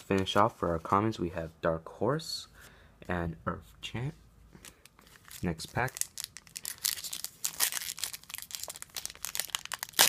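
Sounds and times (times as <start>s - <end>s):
foil wrapper tearing and crinkling: 5.2s - 10.0s.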